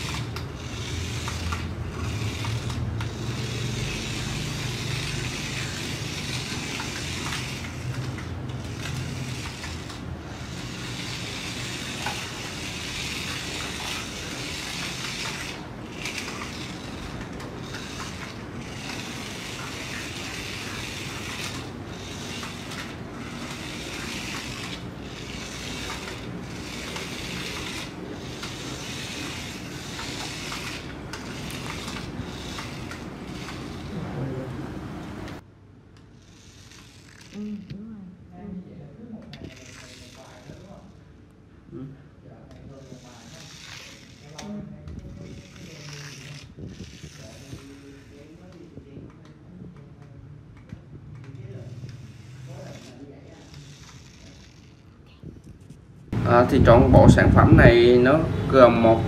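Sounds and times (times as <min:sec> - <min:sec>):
toy car motor whirring: 0:00.0 - 0:34.4, 0:36.0 - 0:37.8, 0:39.3 - 0:41.0, 0:42.5 - 0:48.8, 0:51.2 - 0:59.0.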